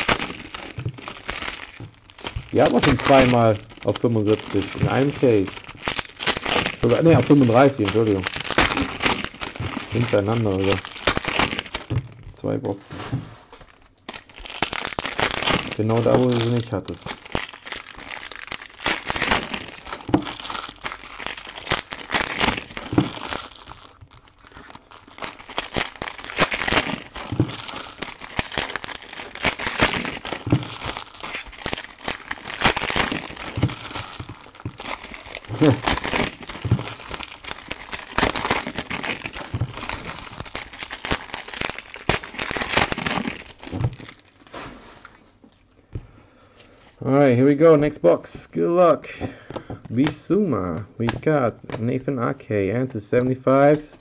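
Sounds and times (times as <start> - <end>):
foil wrappers crinkling and tearing: 0.0 - 45.8, 49.1 - 52.1.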